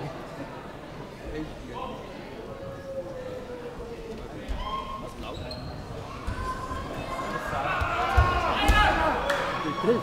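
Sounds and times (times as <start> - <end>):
spectators shouting: 6.3 - 10.0.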